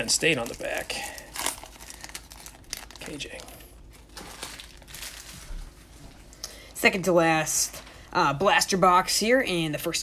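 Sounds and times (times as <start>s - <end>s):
foil wrapper crinkling: 0.0s - 6.4s.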